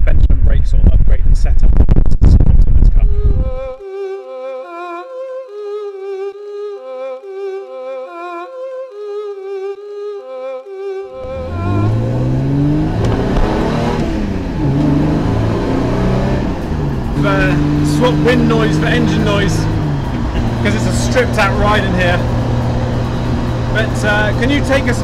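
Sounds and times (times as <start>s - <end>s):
car engine revving: 11.2s - 25.0s.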